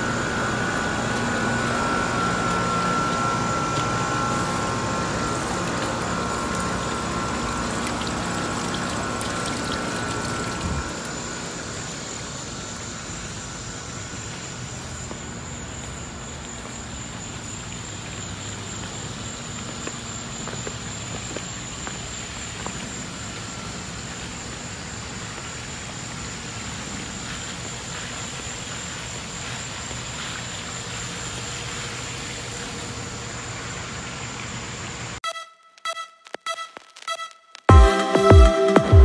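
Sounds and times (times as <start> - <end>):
high-pitched whine: 0.0 - 20.6
continuous hiss: 0.0 - 35.2.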